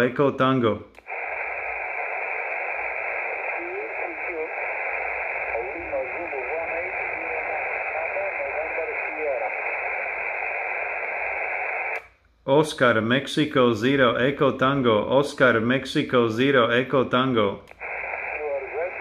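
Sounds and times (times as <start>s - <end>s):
faint radio voices: 1.0s - 12.0s, 17.7s - 19.0s
radio static hiss: 1.0s - 12.1s, 12.7s - 19.0s.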